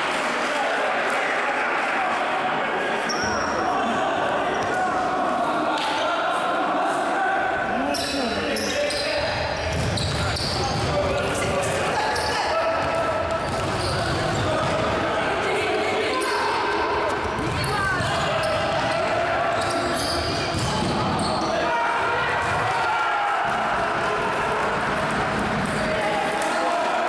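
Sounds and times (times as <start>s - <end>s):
ball bouncing on wooden court: 12.8s - 14.9s, 17.2s - 18.2s, 20.4s - 21.4s.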